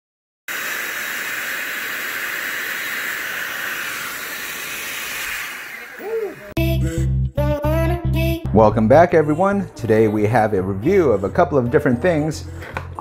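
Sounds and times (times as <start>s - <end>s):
electric air blower hissing: 0.5s - 6.6s.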